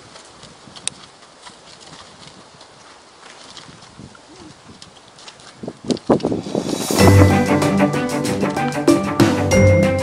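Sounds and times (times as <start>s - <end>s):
horse hoofbeats on dirt: 0.0s - 6.5s
steady outdoor hiss: 6.1s - 10.0s.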